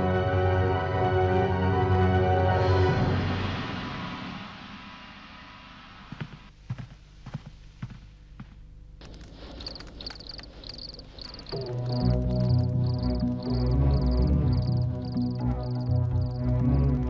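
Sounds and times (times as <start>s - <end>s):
rhythmic high-pitched chirping: 9.3s - 17.0s.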